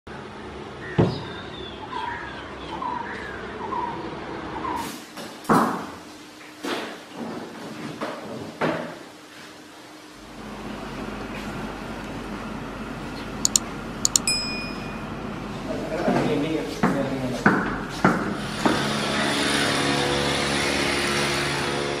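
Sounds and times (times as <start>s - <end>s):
outdoor background noise: 0.1s - 22.0s
faint high chirps: 13.5s - 15.1s.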